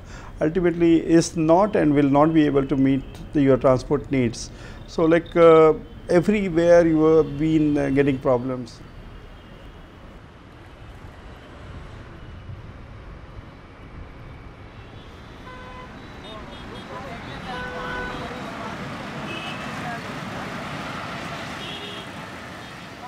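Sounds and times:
drone of traffic engines and tyres: 0.0 - 23.0
car horns honking: 15.0 - 23.0.

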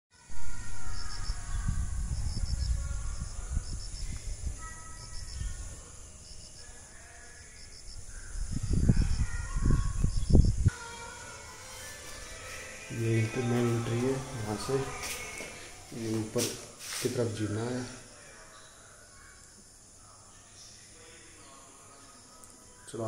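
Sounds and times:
faint high chirps: 0.2 - 16.4
wind buffeting microphone: 0.3 - 6.2, 7.8 - 10.7.

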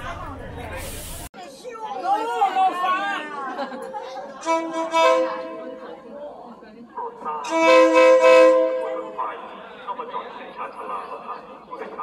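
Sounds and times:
train horn blast: 4.4 - 5.8, 7.4 - 9.2.

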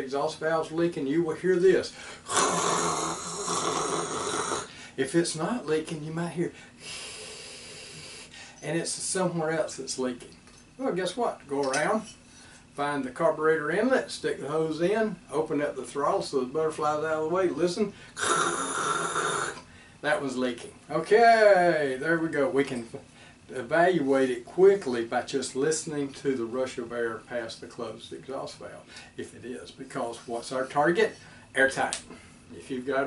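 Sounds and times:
man imitating rushing hiss of air: 2.1 - 4.8, 6.8 - 8.4, 18.2 - 19.6.

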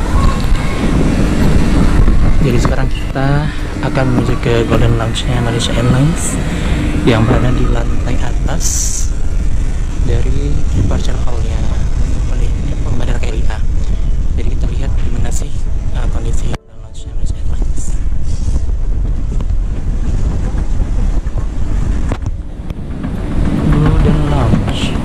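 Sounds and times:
wind rumble on microphone: 0.0 - 25.0.

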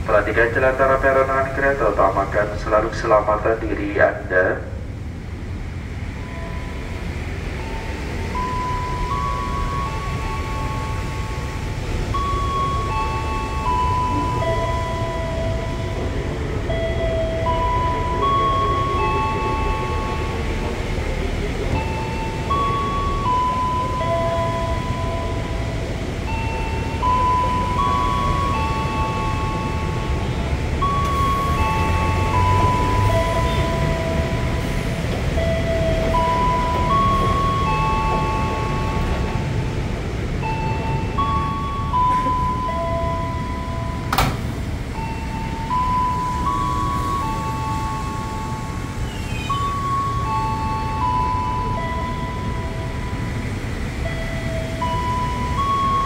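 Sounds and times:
train rumble: 0.0 - 56.0
chiming tune over loudspeakers: 6.2 - 44.3, 44.9 - 56.0.

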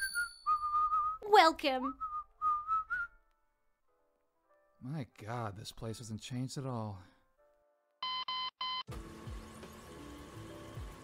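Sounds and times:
person whistling: 0.0 - 3.2.

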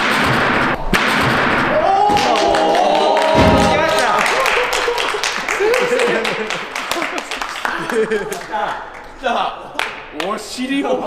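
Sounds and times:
feet thumping springboard: 0.0 - 2.4, 3.2 - 4.1
people cheering: 1.7 - 10.4.

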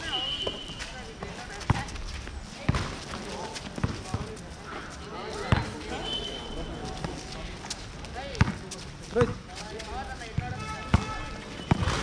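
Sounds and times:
basketball bouncing on a court: 1.6 - 2.0, 3.8 - 4.4, 5.5 - 5.8, 8.4 - 8.6, 10.3 - 12.0.

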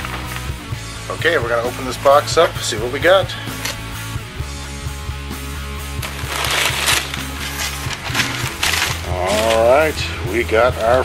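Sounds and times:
background music with bass line: 0.0 - 11.0
styrofoam lid rubbing and scraping: 5.9 - 10.0.

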